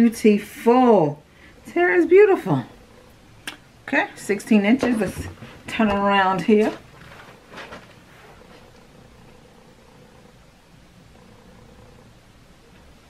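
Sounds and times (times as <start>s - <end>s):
faint steady hum: 0.0s - 13.0s
clothing and hair rustle: 4.9s - 8.8s.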